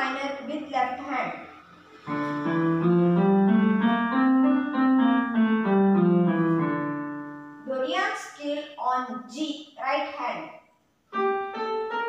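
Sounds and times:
electronic keyboard piano notes: 0.0s - 7.9s, 11.1s - 12.0s.

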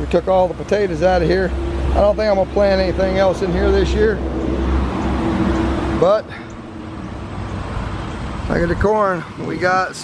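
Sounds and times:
motor vehicle passing on road: 0.0s - 10.0s.

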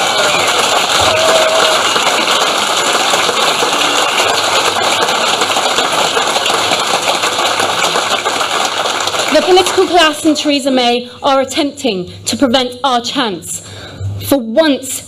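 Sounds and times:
audience applauding: 0.0s - 10.2s.

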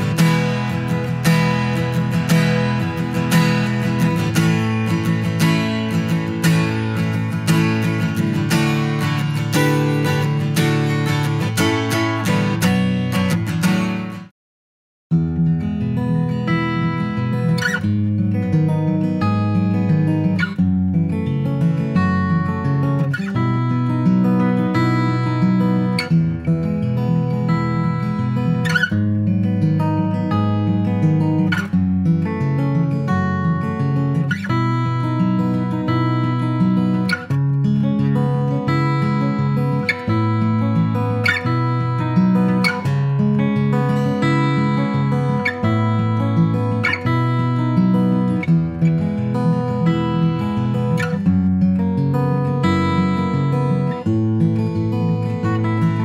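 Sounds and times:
acoustic guitar chords and picking: 0.0s - 14.3s, 15.1s - 56.0s.

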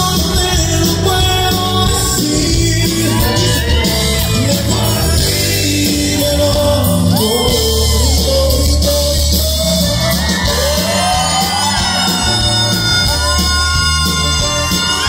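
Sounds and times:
bass: 0.0s - 15.0s
congas: 0.0s - 15.0s
drums: 0.0s - 15.0s
guitar: 0.0s - 15.0s
person singing: 0.0s - 15.0s
button accordion: 9.1s - 15.0s.

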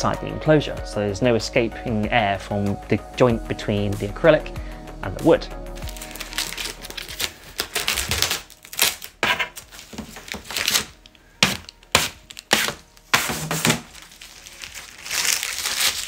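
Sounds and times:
plastic film peeling off crackling: 5.8s - 16.0s.

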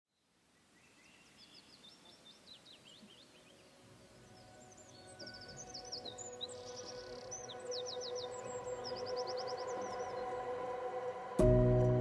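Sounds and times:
songbirds chirping: 0.1s - 11.8s
ambient music chord: 3.9s - 12.0s.

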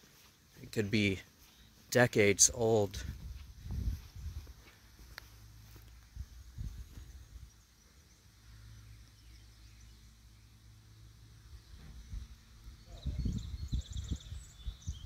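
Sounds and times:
birds chirping: 0.0s - 3.3s, 5.2s - 15.0s
footsteps: 0.0s - 7.3s
wind rumble on microphone: 3.0s - 4.7s, 6.1s - 7.6s, 11.6s - 15.0s.

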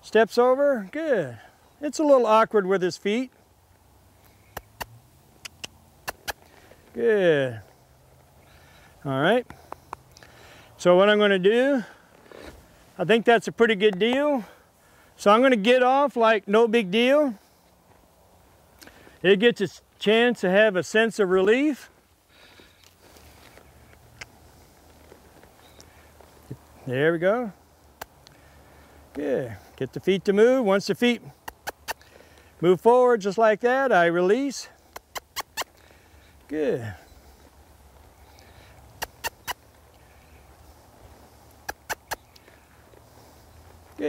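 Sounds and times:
sharp click: 4.5s - 6.4s
quick tongue clicks: 4.5s - 6.6s, 31.4s - 32.1s, 34.9s - 35.8s, 39.0s - 39.6s, 41.6s - 42.5s
horse hooves walking in sand: 21.0s - 28.5s, 34.0s - 44.0s.

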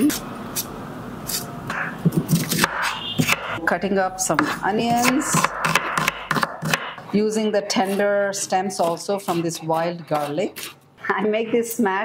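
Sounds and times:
knife cutting onion: 0.0s - 3.6s, 4.3s - 10.8s.

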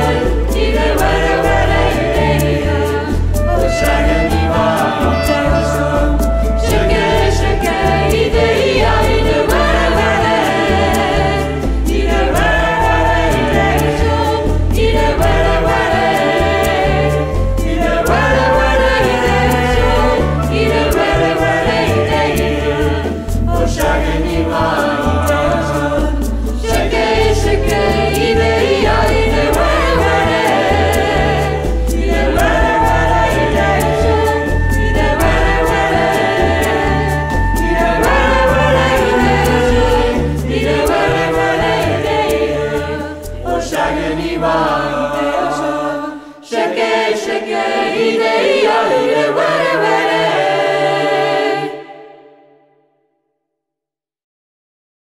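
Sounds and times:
deep pulsing bass line: 0.0s - 43.6s
group of voices singing: 0.0s - 52.8s.

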